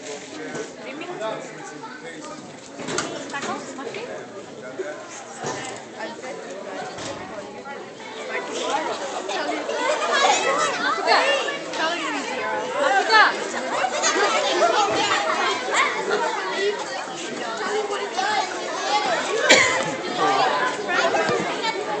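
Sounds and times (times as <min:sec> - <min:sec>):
crowd chattering: 0:00.0 - 0:22.0.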